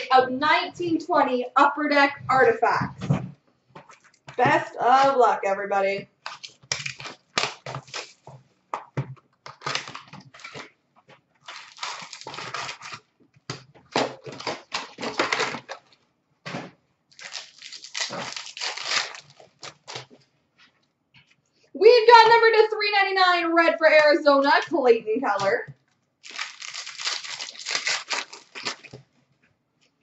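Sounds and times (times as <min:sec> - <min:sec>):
card pack wrapper tearing: 0:06.2 - 0:08.2, 0:09.5 - 0:10.7, 0:11.4 - 0:13.1, 0:13.9 - 0:15.9, 0:17.1 - 0:20.1, 0:26.2 - 0:29.0
cardboard rustling: 0:09.0 - 0:13.1, 0:13.8 - 0:20.8, 0:26.2 - 0:29.3.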